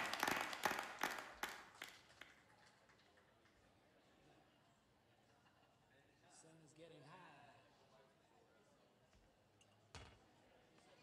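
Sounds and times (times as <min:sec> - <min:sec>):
scattered hand claps: 0:00.0 - 0:03.6.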